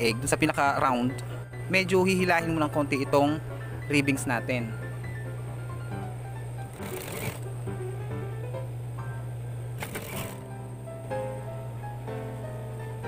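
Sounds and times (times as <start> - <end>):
sewing machine stitching: 6.7 - 7.5, 9.8 - 10.5.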